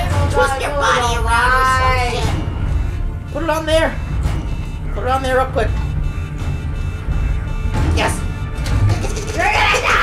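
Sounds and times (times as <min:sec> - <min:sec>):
low droning score: 0:02.1 - 0:09.3.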